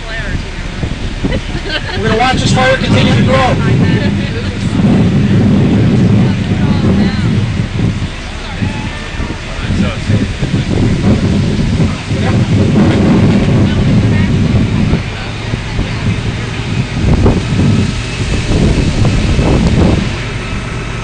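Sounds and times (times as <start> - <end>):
faint voices: 0.0 - 21.0
wind buffeting microphone: 0.0 - 21.0.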